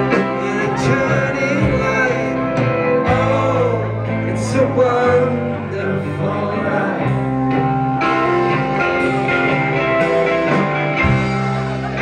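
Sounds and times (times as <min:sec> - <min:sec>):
guitar: 0:00.0 - 0:12.0
low bass line: 0:00.0 - 0:12.0.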